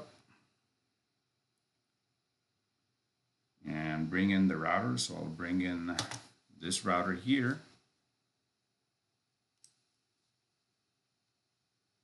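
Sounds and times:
computer mouse click: 5.9 - 6.3, 9.6 - 9.9.

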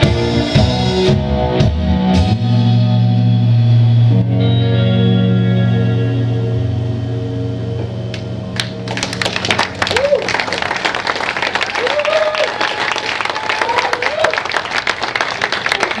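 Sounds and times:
electric guitar and bass chord: 0.0 - 10.0
audience clapping: 8.1 - 16.0
shouted whoops: 9.8 - 10.5, 11.6 - 14.5.

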